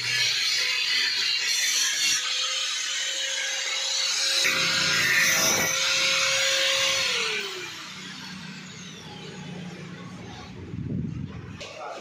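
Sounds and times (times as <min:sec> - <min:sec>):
angle grinder whine spinning down: 0:01.9 - 0:11.0.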